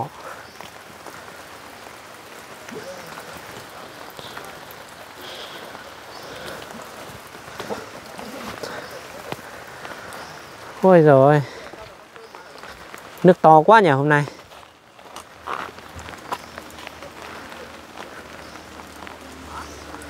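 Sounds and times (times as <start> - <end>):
heavy rain pattering: 0.0 - 20.0.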